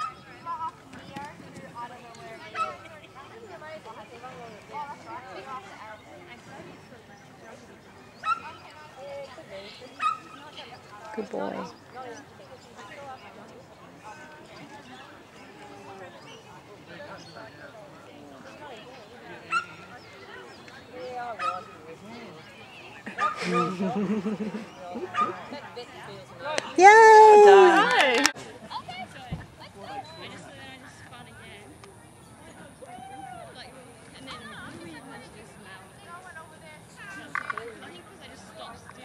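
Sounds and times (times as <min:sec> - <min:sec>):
faint voices: 0:00.0 - 0:39.0.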